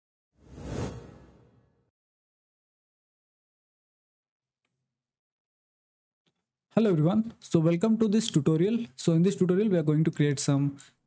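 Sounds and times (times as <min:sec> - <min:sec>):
whoosh sound effect: 0:00.4 - 0:01.6.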